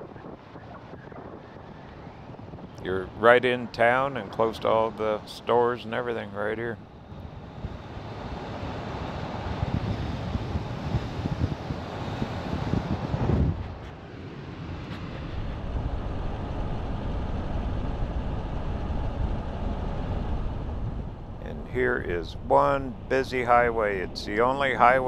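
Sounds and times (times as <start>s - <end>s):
road and wind noise of vehicle: 0.0s - 25.0s.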